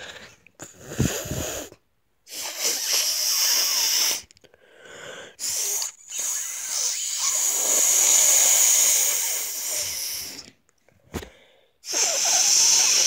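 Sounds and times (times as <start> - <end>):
person forcing breath out: 0.0 - 13.0.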